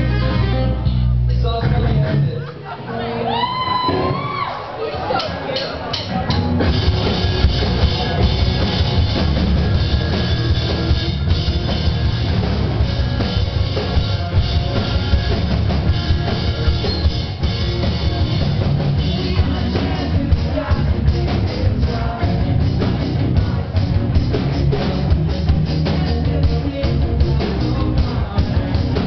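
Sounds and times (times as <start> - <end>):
rock band playing live: 0.0 - 29.0.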